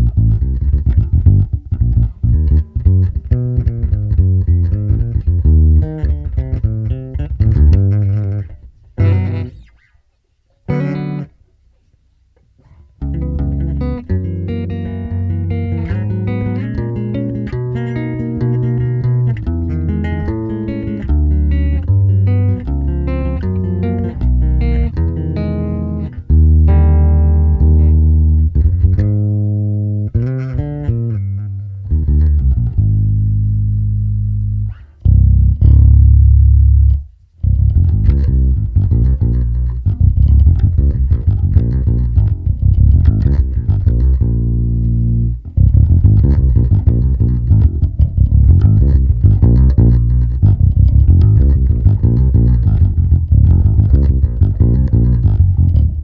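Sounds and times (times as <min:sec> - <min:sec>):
electric bass playing: 0:00.0 - 0:10.0, 0:10.6 - 0:11.7, 0:12.7 - 0:56.0.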